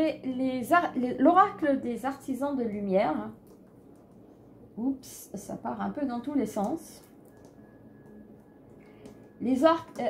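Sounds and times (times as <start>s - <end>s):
faint high-pitched tone: 6.1s - 10.0s.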